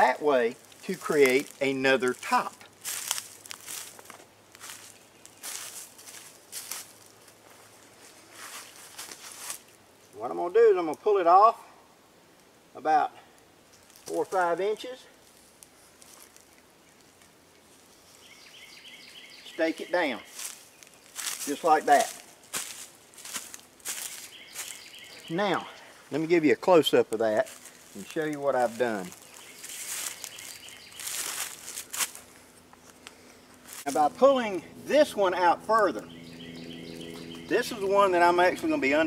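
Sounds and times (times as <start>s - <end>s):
footsteps in dry leaves: 0.0s - 9.8s, 13.8s - 14.4s, 15.1s - 34.2s
nylon poncho rustling: 27.4s - 32.3s.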